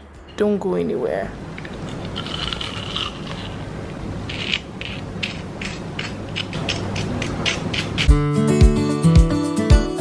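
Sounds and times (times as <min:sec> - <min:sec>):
low steady hum: 0:00.0 - 0:08.1.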